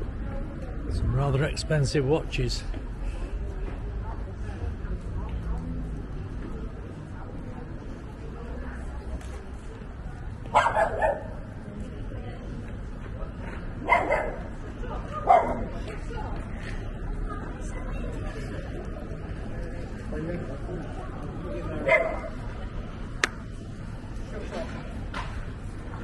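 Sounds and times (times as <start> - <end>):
street noise: 0.0 - 26.0
dog barking: 10.5 - 11.4, 13.8 - 14.5, 15.2 - 15.7, 21.8 - 22.4.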